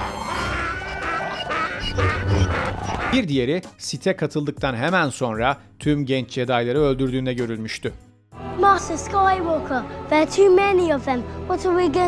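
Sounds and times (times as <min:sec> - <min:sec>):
film soundtrack music: 0:00.0 - 0:12.0.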